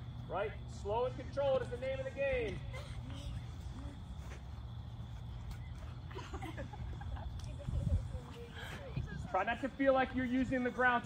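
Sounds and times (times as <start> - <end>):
low outdoor rumble: 0.0 - 11.0
young players chattering: 0.6 - 11.0.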